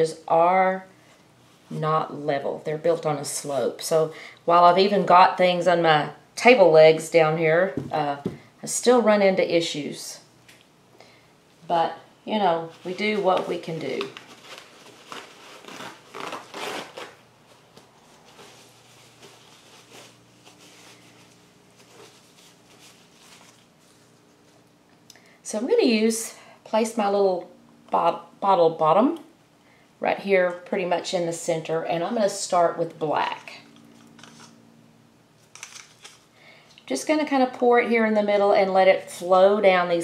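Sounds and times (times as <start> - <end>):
person speaking: 1.7 - 10.2, 11.6 - 14.2.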